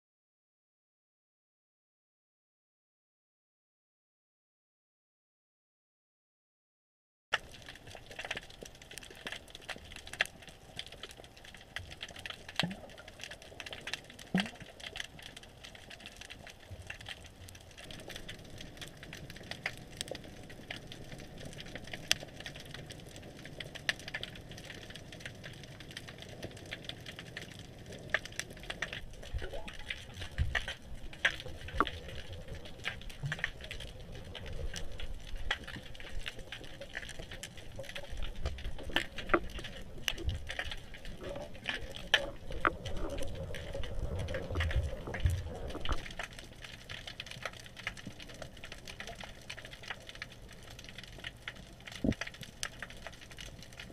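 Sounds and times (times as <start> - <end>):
underwater clicks and crackles: 7.3 - 53.9
water movement rumble: 7.3 - 53.9.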